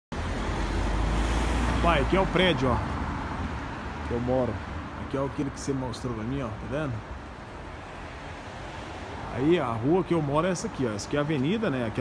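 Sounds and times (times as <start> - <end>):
street traffic rumble: 0.1 - 12.0.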